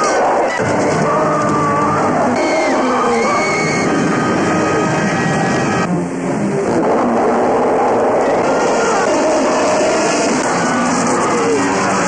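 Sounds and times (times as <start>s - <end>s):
loud dense rumbling: 0.3s - 12.0s.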